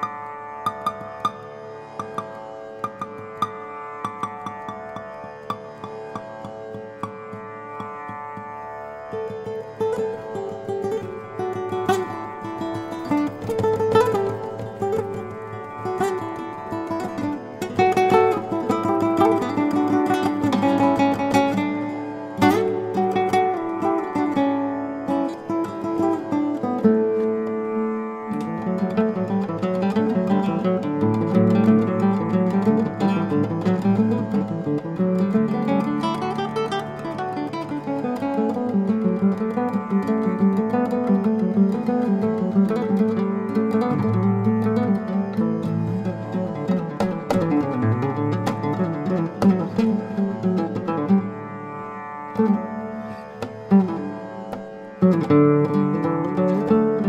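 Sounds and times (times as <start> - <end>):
fingerstyle classical guitar: 0.0 - 57.0.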